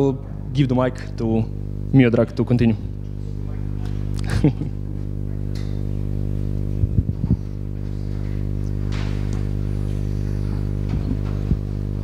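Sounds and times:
electrical mains hum: 0.0s - 12.0s
microphone handling knocks: 10.8s - 11.7s.

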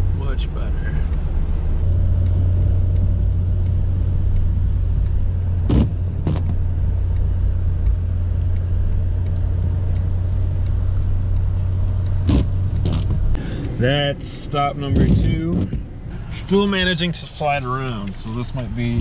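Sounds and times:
car engine and road noise drone: 0.0s - 19.0s.

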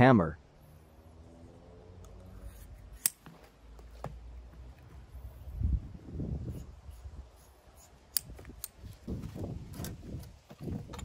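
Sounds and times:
shears snipping rubber: 2.0s - 4.0s, 6.5s - 9.1s.

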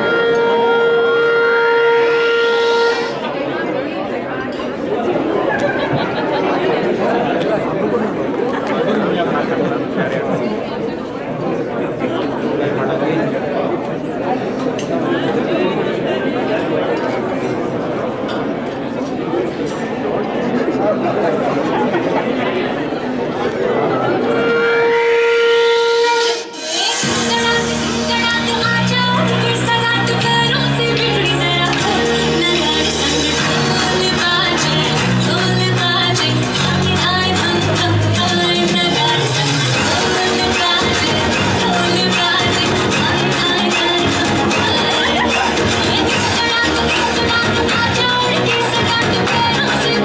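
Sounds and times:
audience chatter: 0.0s - 50.0s.

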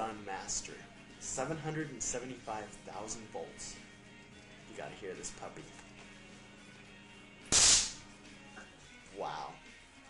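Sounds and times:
stun gun electric arcing: 7.4s - 8.1s.

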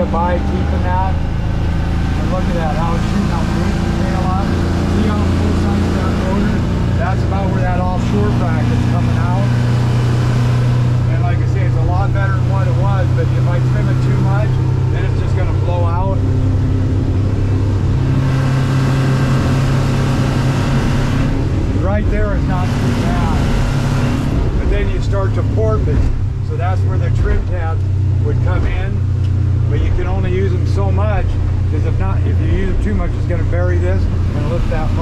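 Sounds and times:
outboard motor drone: 0.0s - 35.0s.

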